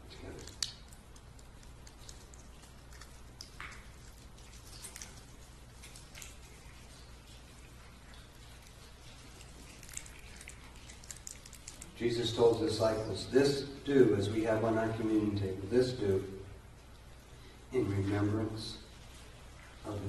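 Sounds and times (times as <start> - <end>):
low electrical hum: 0.0 - 20.0
small cups clicking and rustling: 8.2 - 12.0.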